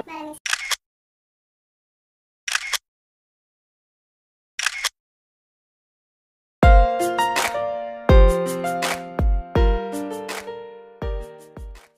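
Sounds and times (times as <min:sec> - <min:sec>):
camera shutter double click: 0:00.5 - 0:00.8, 0:02.5 - 0:02.8, 0:04.6 - 0:05.0
music: 0:06.6 - 0:11.9.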